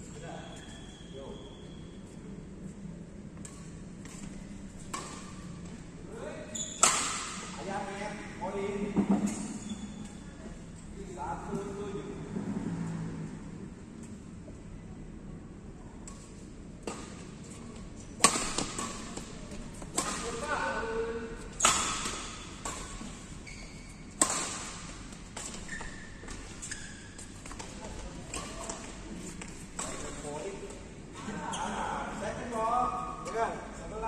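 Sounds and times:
rackets hitting shuttlecock: 6.8s - 7.5s, 18.2s - 20.6s, 21.6s - 23.1s, 24.2s - 26.4s.

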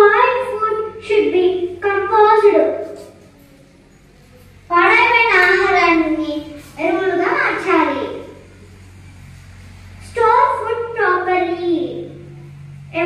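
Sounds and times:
girl speaking through a microphone: 0.0s - 3.6s, 4.6s - 8.5s, 10.0s - 12.3s
faint steady hum: 0.0s - 13.0s.

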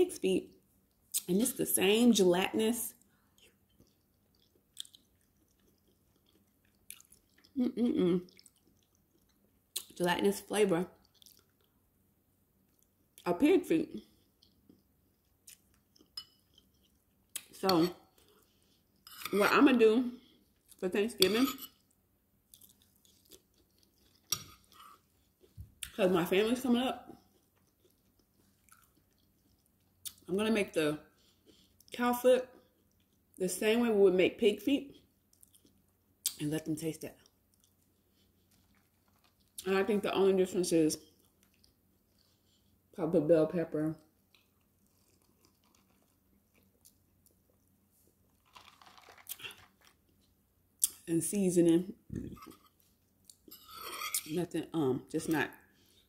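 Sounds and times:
faint chewing of soft food: 0.5s - 1.3s, 2.9s - 10.0s, 10.9s - 13.2s, 14.0s - 19.4s, 20.2s - 20.8s, 21.7s - 26.0s, 27.1s - 30.3s, 31.0s - 33.4s, 34.9s - 36.4s, 37.1s - 39.7s, 41.0s - 43.0s, 44.1s - 51.0s, 52.1s - 54.4s, 55.5s - 56.0s.

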